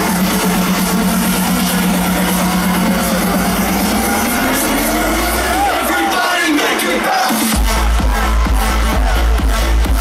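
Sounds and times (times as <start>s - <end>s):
crowd noise: 0.0s - 10.0s
electronic dance music: 0.0s - 10.0s.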